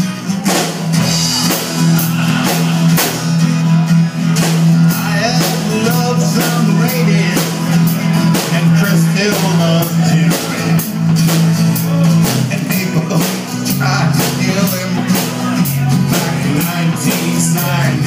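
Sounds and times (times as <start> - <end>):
drum kit beat: 0.0 - 18.0
strummed acoustic guitars: 0.0 - 18.0.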